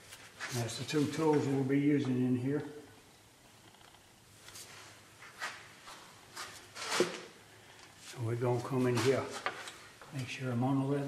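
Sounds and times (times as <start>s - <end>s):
scrapes and rustles: 0.0s - 1.6s, 4.4s - 9.8s.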